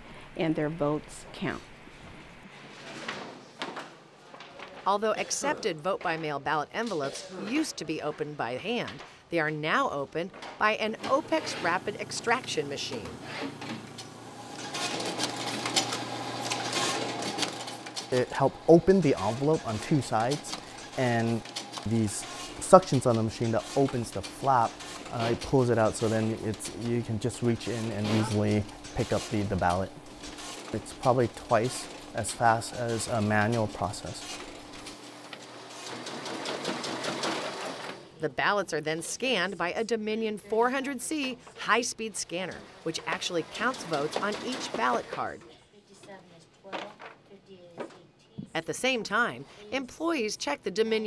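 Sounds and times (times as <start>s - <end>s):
machine humming: 10.9s - 38.0s.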